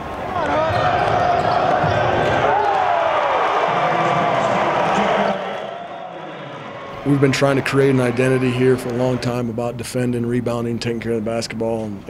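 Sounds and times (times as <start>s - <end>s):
crowd noise and voices: 0.0s - 12.0s.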